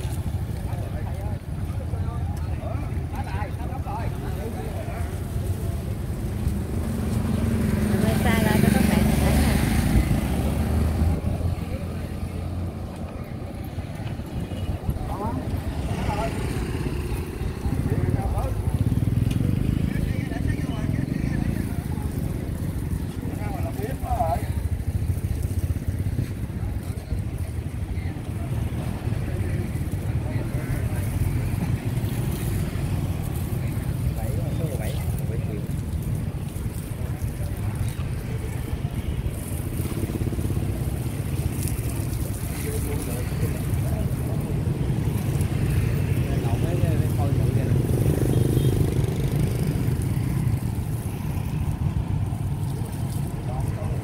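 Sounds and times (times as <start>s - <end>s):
people talking: 0.0s - 6.8s, 7.7s - 54.0s
rumble of passing vehicles: 0.0s - 54.0s.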